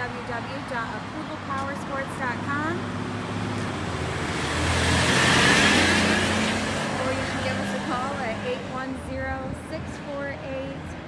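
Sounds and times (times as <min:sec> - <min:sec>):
vehicle passing: 0:00.0 - 0:11.0.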